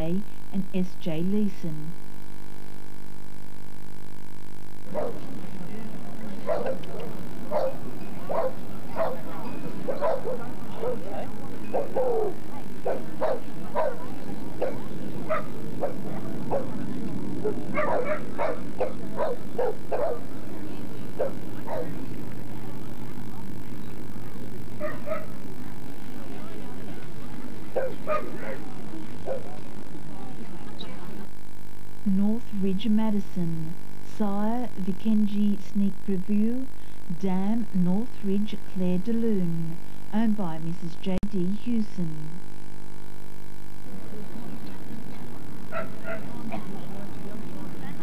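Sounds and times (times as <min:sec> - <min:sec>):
murmur of crowd chatter: 0:04.9 - 0:31.4, 0:43.8 - 0:48.0.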